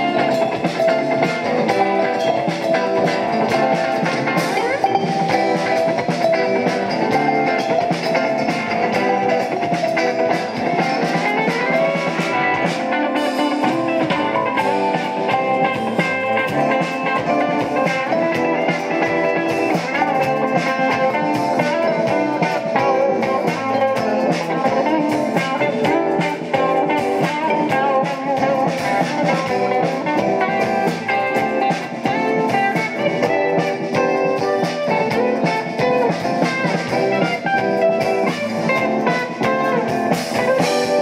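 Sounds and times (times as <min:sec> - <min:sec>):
bass guitar: 0:00.0 - 0:41.0
drum kit: 0:00.0 - 0:41.0
electric guitar: 0:00.0 - 0:41.0.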